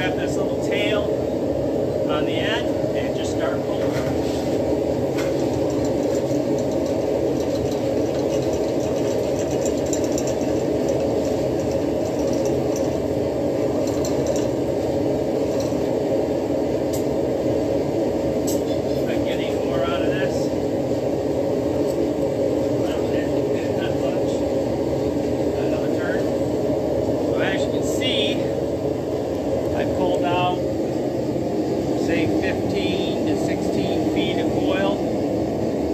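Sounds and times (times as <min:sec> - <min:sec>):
shop machinery drone: 0:00.0 - 0:35.9.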